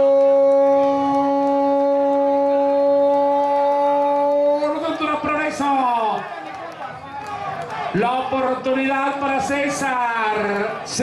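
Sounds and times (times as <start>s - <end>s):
man shouting goal cry: 0.0s - 6.3s.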